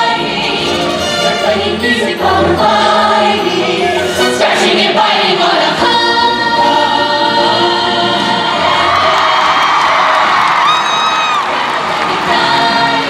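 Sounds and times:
backing track music: 0:00.0 - 0:13.0
chorus singing: 0:00.0 - 0:13.0.

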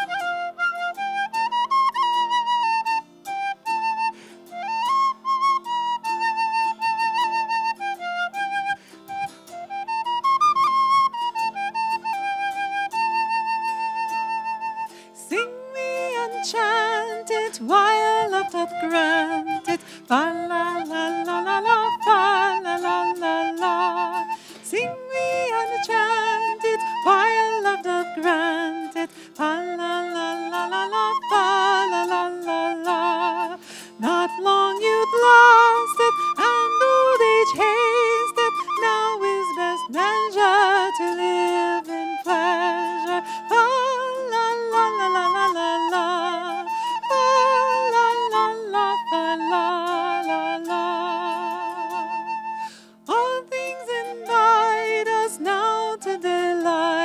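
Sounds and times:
woman singing with vibrato: 0:00.0 - 0:00.4, 0:15.2 - 0:57.0
plucked zither: 0:00.0 - 0:52.4, 0:53.0 - 0:57.0
wind instrument melody: 0:00.0 - 0:57.0.

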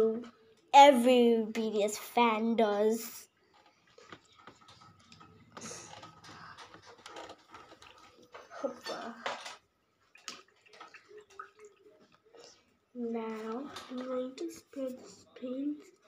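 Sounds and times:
faint handling clicks and rustles: 0:03.2 - 0:16.0.

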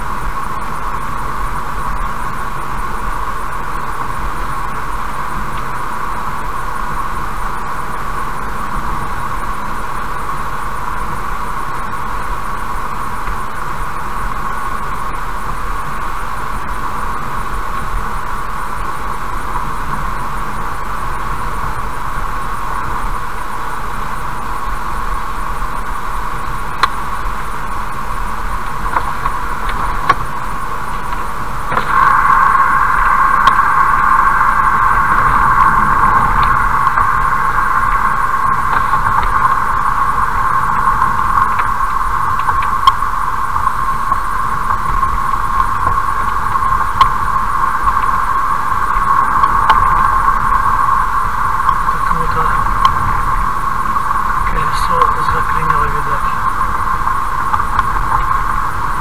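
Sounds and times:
car driving noise inside cabin: 0:00.0 - 0:59.0.

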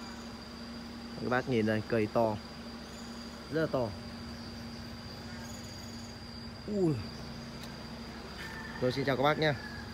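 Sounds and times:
high-pitched insect call: 0:00.0 - 0:09.9
low forest hum: 0:00.0 - 0:09.9.

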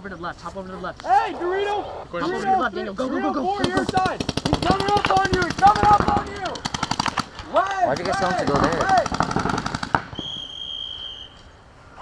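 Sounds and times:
paintball markers firing: 0:03.6 - 0:10.4.

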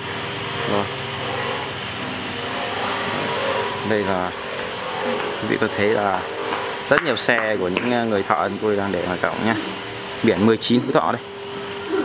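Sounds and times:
machinery hum: 0:00.0 - 0:12.0.

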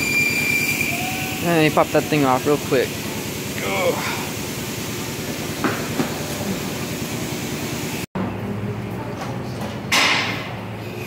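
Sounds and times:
steady hum: 0:00.0 - 0:09.1.

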